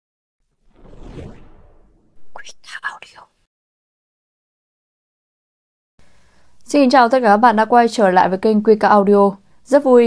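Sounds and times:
whoosh: 0.4 - 2.8.

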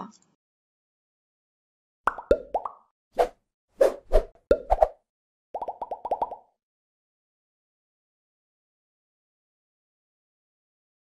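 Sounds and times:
cartoon plop pops: 2.1 - 2.8, 5.6 - 6.5
small rising bloops: 2.1 - 2.8.

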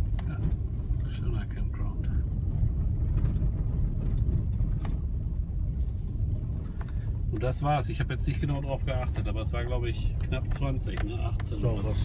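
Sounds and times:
engine and tyres on gravel: 0.0 - 12.0.

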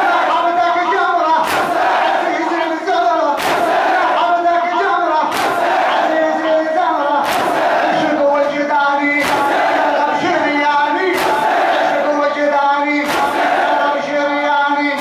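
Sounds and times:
crowd of men chanting: 0.0 - 15.0
unison chest-beating slaps: 1.4 - 2.2, 3.4 - 4.0, 5.3 - 6.0, 7.2 - 7.9, 9.2 - 9.8, 11.1 - 11.9, 13.0 - 13.7.

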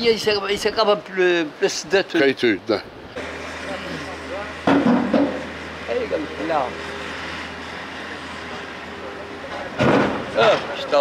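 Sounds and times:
voices speaking: 0.0 - 11.0
diesel engine running at low revs: 3.1 - 11.0.

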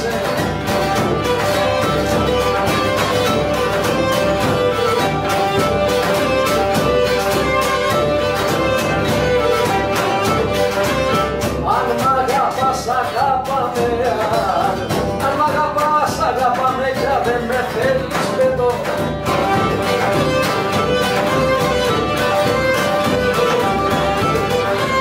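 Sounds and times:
bowed lyra melody: 0.0 - 11.7, 19.2 - 25.0
steady beat: 0.0 - 25.0.

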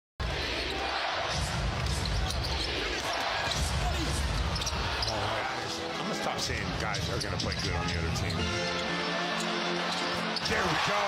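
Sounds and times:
arena crowd noise: 0.2 - 11.0.

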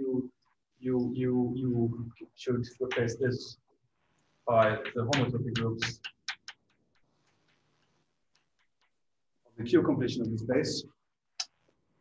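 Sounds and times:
chalk tapping on blackboard: 4.6 - 9.3.

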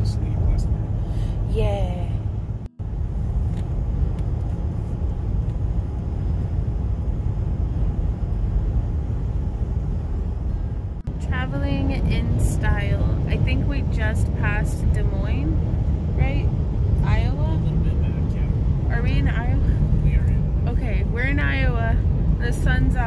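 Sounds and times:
car cabin road and engine noise: 0.0 - 23.0.

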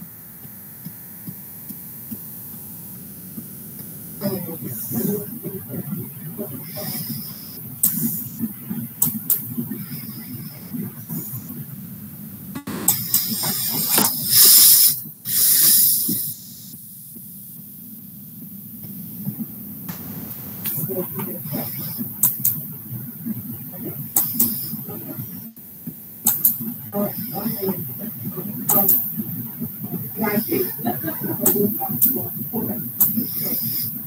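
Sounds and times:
loud hissing bursts: 12.9 - 16.5, 19.9 - 21.1
steady hiss: 19.9 - 22.5, 26.3 - 34.0
background voices talking: 26.9 - 33.6.

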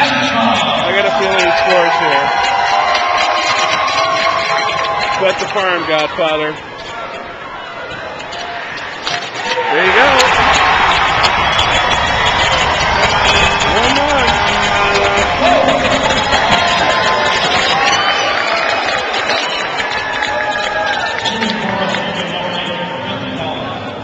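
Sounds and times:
crowd cheering and shouting: 0.0 - 24.0.

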